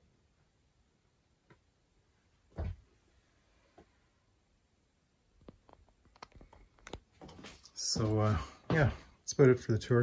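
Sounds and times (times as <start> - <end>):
sharp clicks and light taps: 5.4 - 7.1.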